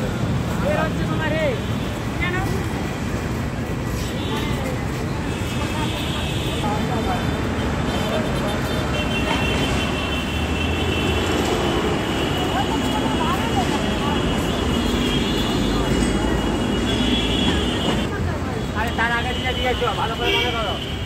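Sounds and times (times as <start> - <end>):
busy road traffic: 0.0 - 21.0.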